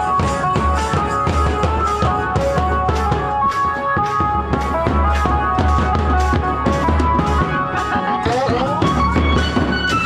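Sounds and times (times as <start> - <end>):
high melody: 0.0 - 10.0.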